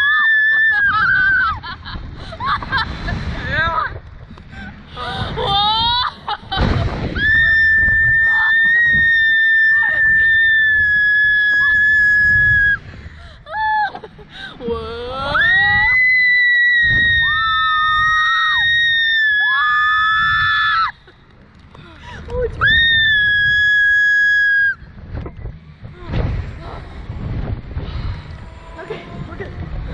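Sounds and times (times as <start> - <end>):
girls screaming: 0.0 - 1.7.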